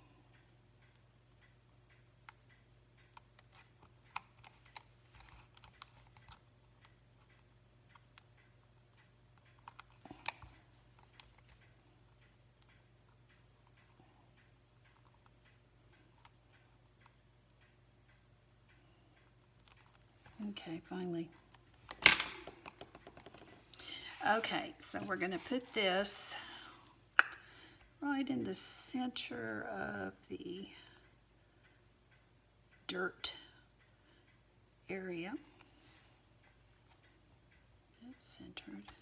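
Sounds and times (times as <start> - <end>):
low steady hum: 0.0 - 39.0.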